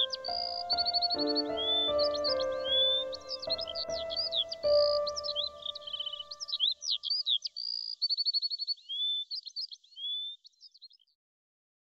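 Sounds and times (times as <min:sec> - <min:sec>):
soft held music tone: 0:00.0 - 0:06.5
birdsong chirps and trills: 0:00.0 - 0:11.1.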